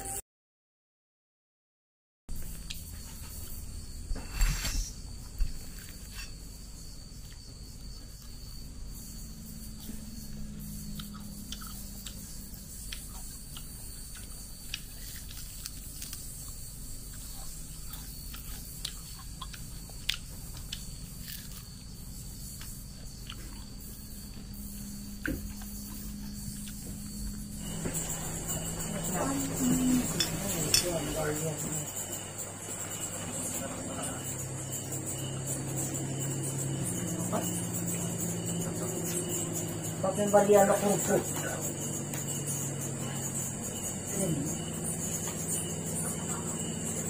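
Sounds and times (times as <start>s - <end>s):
steady low hum: 2.3s - 47.0s
chewing with crunches: 4.3s - 40.0s.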